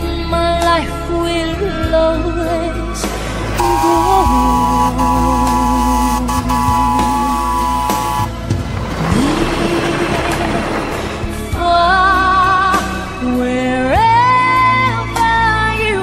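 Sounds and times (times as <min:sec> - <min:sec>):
background song: 0:00.0 - 0:16.0
steam locomotive whistle: 0:03.6 - 0:08.4.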